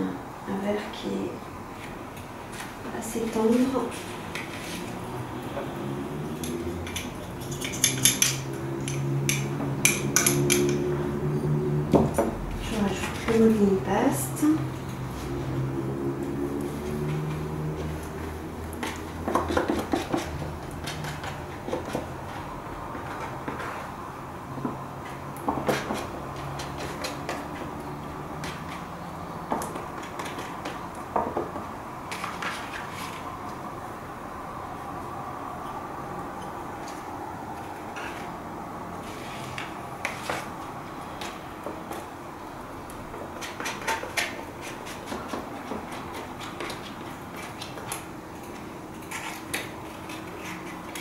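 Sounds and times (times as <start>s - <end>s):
metal palette knives clinking: 6.4s - 10.8s.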